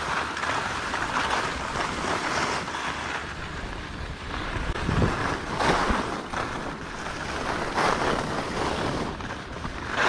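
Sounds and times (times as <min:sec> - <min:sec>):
skis scraping over snow: 0:00.0 - 0:10.0
wind buffeting microphone: 0:00.7 - 0:10.0.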